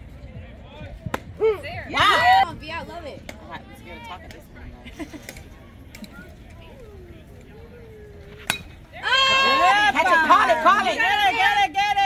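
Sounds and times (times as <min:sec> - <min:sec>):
faint voices: 0:00.0 - 0:12.0
bat hitting ball metallic ping: 0:08.4 - 0:08.8.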